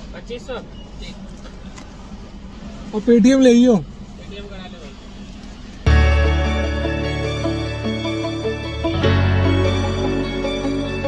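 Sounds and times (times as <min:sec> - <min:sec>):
low hum inside car: 0:00.0 - 0:06.6.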